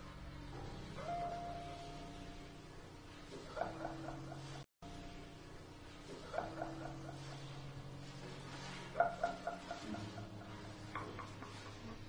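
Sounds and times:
low held tone: 0:00.6 - 0:02.8.

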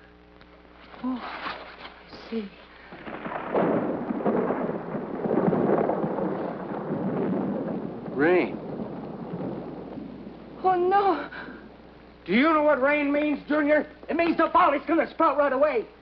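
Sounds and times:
rain falling: 0:00.0 - 0:16.0
thunder rumbling: 0:02.8 - 0:15.4.

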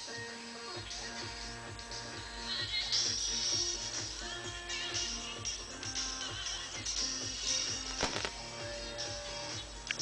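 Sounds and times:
music with steady beat: 0:00.0 - 0:10.0
earphone handling clicks: 0:07.9 - 0:08.4.

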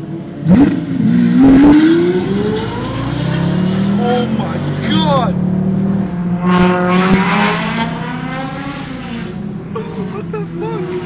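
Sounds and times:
car engine revving: 0:00.2 - 0:11.0.

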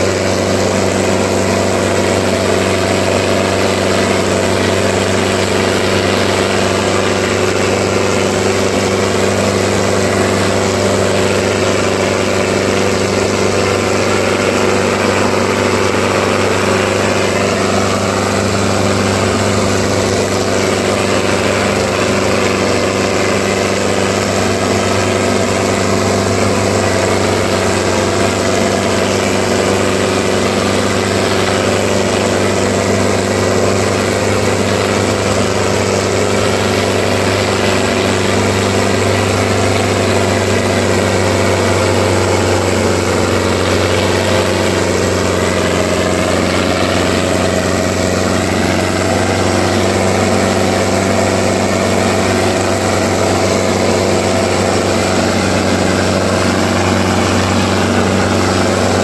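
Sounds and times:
tractor diesel engine running: 0:00.0 - 0:59.0.

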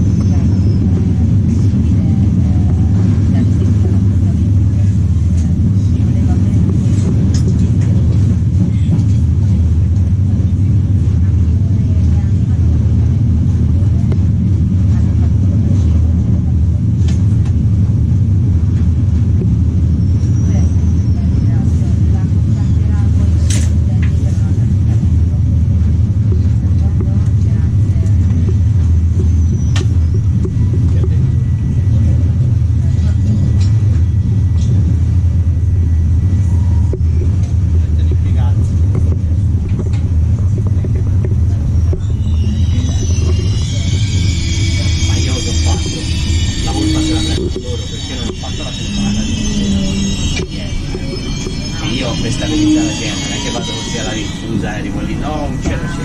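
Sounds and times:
train wheels rumbling on rails: 0:00.0 - 0:56.0.

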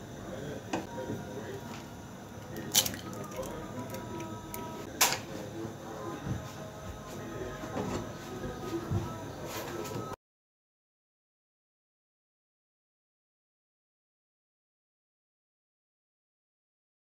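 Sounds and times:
egg shell breaking: 0:02.6 - 0:03.5.

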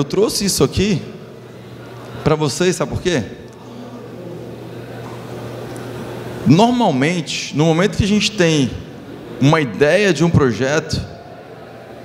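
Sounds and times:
large hall background noise: 0:00.0 - 0:12.0
steady low hum: 0:00.0 - 0:12.0.

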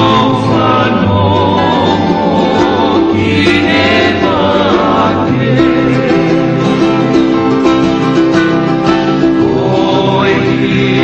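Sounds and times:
plucked guitar lullaby: 0:00.0 - 0:11.0.

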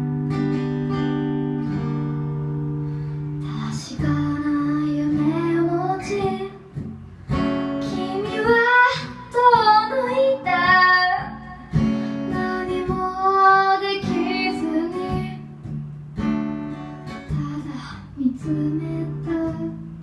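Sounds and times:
acoustic guitar: 0:00.0 - 0:20.0
woman singing: 0:03.4 - 0:07.0, 0:07.6 - 0:15.6, 0:17.2 - 0:20.0.

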